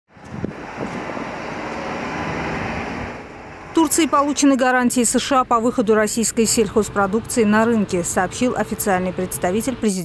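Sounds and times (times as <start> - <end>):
outdoor rumbling wash: 0.1 - 10.0.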